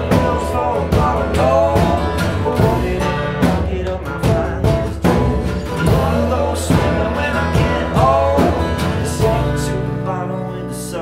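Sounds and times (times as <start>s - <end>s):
steady beat: 0.0s - 9.5s
strummed acoustic guitar: 0.0s - 11.0s.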